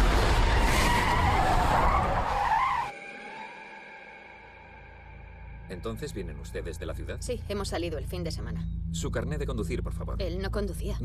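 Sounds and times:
car tyres squealing: 0.1 - 3.8.

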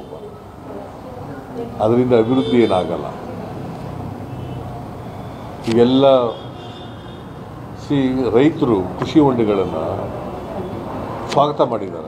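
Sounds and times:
distant traffic or machinery: 0.0 - 12.0.

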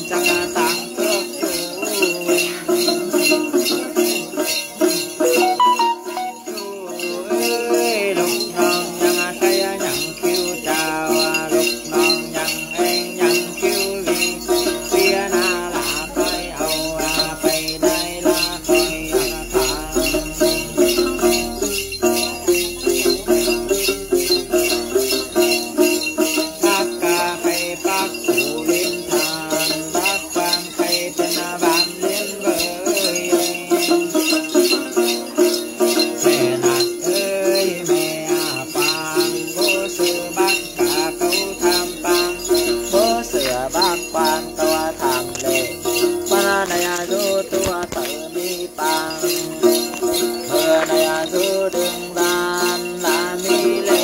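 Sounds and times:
metal jingle bells shaken: 0.0 - 54.0.

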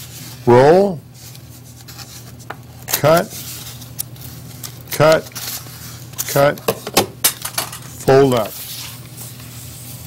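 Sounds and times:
paper being folded and rubbed: 0.0 - 0.5, 1.1 - 6.5, 7.8 - 10.0
steady low hum: 0.0 - 10.0.

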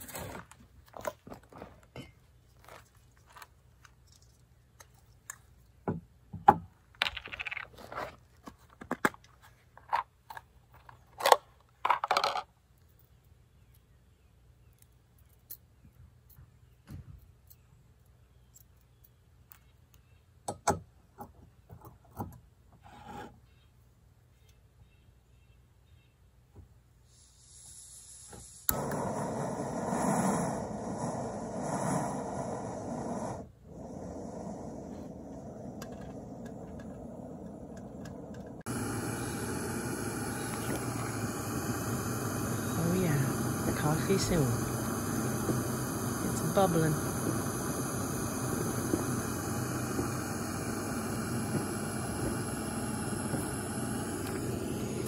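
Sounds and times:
gas burner hissing: 27.1 - 55.0.

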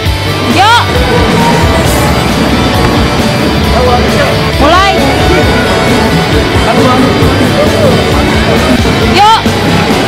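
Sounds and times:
loud music track: 0.0 - 10.0.

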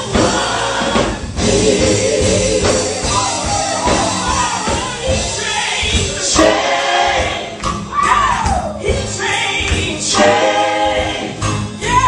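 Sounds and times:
choir singing: 0.0 - 12.0
women singing into microphones: 0.0 - 12.0.

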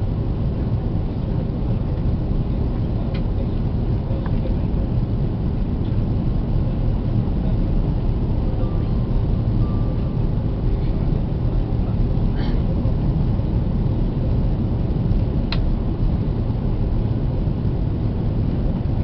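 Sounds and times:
airplane cabin rumble: 0.0 - 19.0
faint short tone: 8.6 - 10.2.

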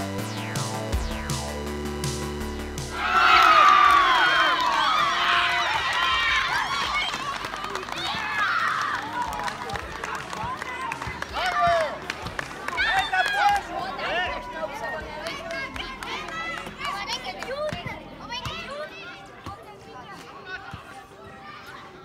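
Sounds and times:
music track: 0.0 - 4.6
people shouting and cheering: 2.9 - 19.2.

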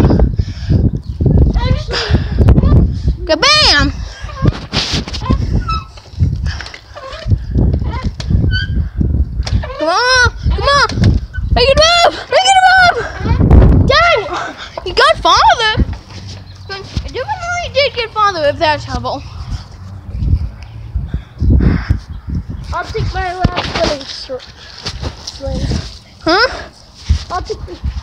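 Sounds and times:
wind buffeting microphone: 0.0 - 28.0
swing set squeaking: 4.0 - 9.0, 9.6 - 13.4.

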